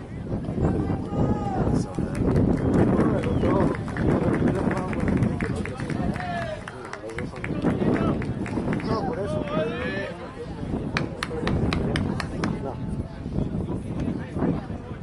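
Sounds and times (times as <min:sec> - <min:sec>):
spectators talking: 0:00.0 - 0:15.0.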